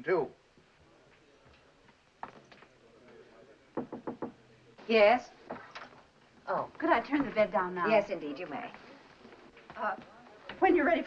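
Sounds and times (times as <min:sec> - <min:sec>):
knocking on wooden door: 0:03.8 - 0:04.4.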